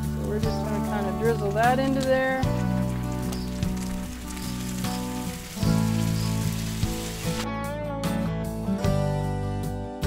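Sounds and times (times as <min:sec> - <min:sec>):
broth pouring: 0:00.0 - 0:07.5
meat and onion sizzling on griddle: 0:00.0 - 0:07.5
background music: 0:00.0 - 0:10.0.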